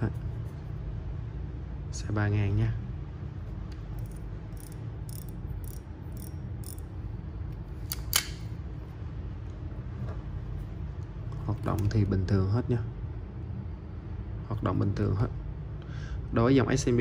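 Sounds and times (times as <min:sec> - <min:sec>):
fishing reel clicking: 0:04.0 - 0:06.8.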